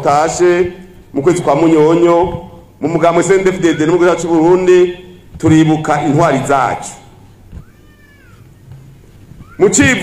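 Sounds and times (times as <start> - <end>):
low background noise: 0.0 - 10.0
faint high-pitched cry: 7.5 - 10.0.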